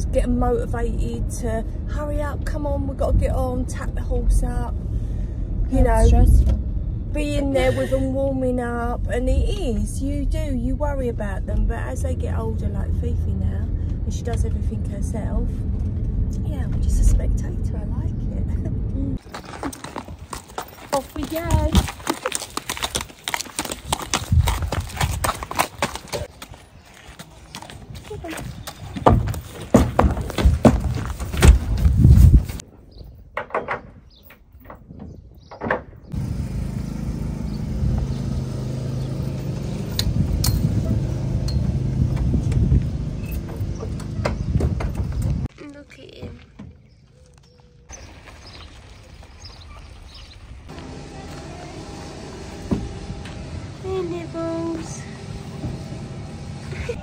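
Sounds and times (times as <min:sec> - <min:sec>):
steady low rumble: 0:00.0 - 0:19.4
hooves clip-clopping on hard ground: 0:19.2 - 0:32.6.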